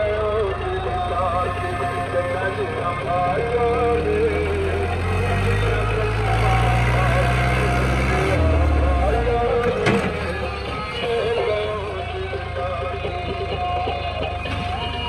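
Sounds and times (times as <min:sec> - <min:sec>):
song with singing: 0:00.0 - 0:15.0
tractor diesel engine labouring: 0:00.0 - 0:15.0.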